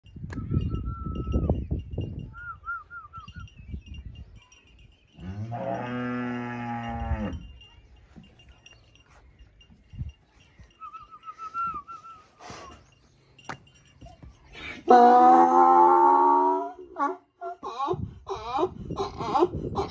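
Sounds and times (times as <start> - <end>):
cow mooing: 5.2 - 7.4, 14.9 - 17.2.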